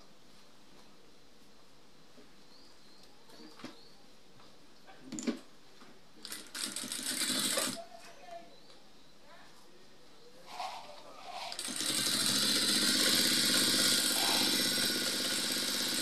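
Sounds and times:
industrial sewing machine running: 0:06.3 - 0:07.8, 0:11.4 - 0:16.0.

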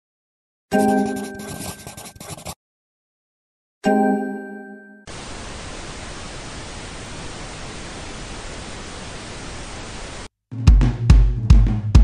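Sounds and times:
television static hiss: 0:05.1 - 0:10.3.

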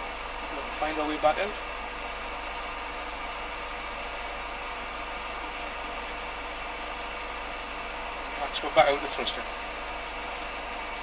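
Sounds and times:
faint hum: 0:00.0 - 0:11.0
steady hiss: 0:00.0 - 0:11.0
thin whine: 0:00.0 - 0:11.0.

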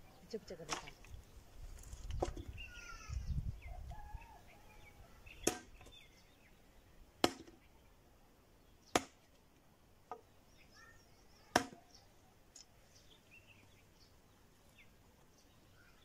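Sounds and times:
birds chirping faintly: 0:00.0 - 0:16.0.

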